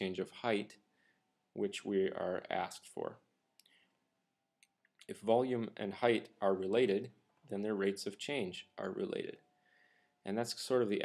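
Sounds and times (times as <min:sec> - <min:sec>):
man speaking: 0:00.0 - 0:00.9, 0:01.6 - 0:03.3, 0:05.0 - 0:09.4, 0:10.3 - 0:11.0.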